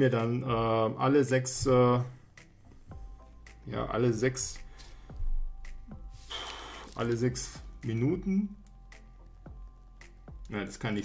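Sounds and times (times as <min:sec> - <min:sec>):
quiet background music: 0:00.0 - 0:11.0.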